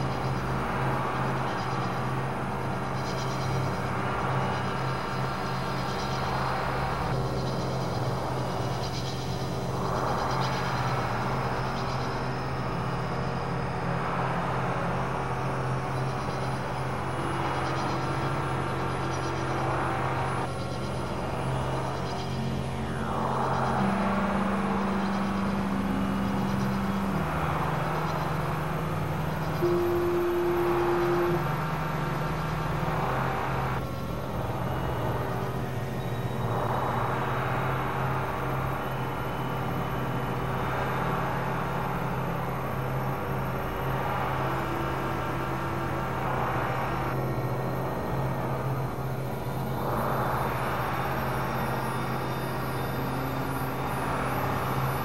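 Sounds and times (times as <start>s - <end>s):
synthesizer drone: 0.0s - 55.0s.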